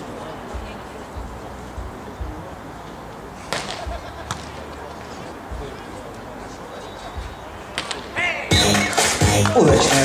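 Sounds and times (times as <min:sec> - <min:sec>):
loud music over loudspeakers: 0:08.5 - 0:10.0.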